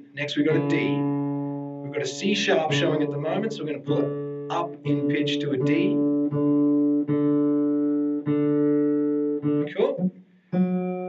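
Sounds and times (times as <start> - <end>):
acoustic guitar string plucked: 0.0 - 11.0.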